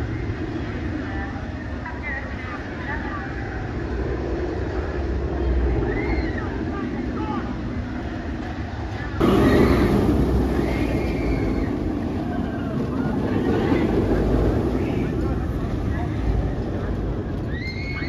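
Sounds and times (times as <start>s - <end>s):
roller coaster rumbling roar: 0.0s - 18.0s
riders screaming: 9.2s - 15.1s, 17.4s - 18.0s.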